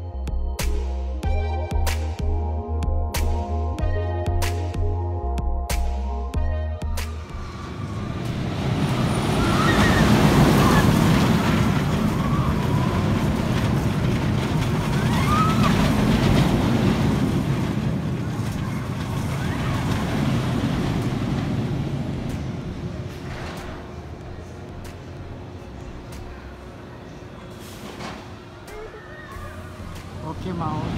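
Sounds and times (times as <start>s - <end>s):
roller coaster rumble: 6.3s - 30.9s.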